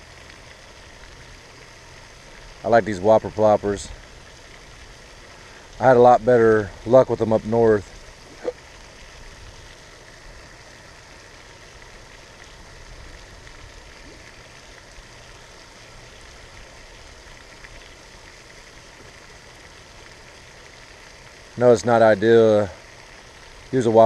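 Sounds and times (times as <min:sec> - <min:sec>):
fountain spray splashing: 0:00.0 - 0:24.0.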